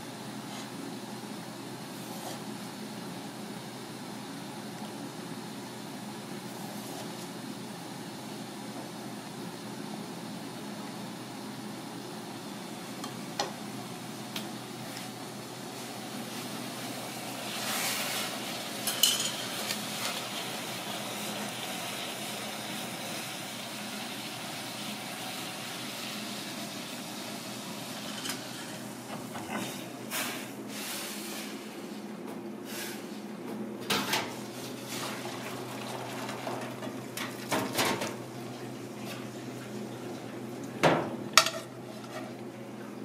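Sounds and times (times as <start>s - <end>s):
steady background hum: 0.0s - 43.0s
pan clattering: 18.8s - 19.5s.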